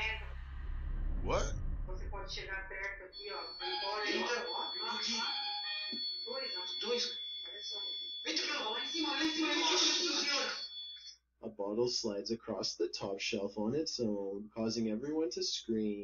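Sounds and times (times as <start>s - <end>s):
voices talking: 1.3s - 16.0s
high-pitched electronic alarm tones: 2.9s - 11.1s.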